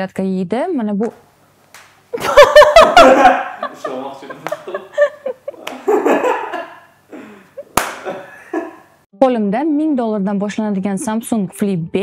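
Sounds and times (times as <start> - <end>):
woman laughing quietly: 2.2 - 5.8
sharp smack: 7.8 - 8.1.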